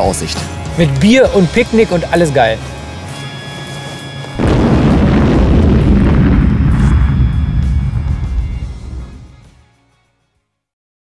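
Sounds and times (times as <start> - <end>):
music: 0.0 - 10.8
explosion rumble: 4.4 - 9.4.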